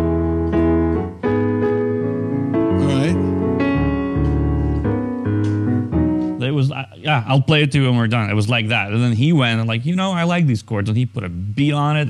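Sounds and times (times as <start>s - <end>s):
piano playing sustained chords: 0.0s - 6.8s.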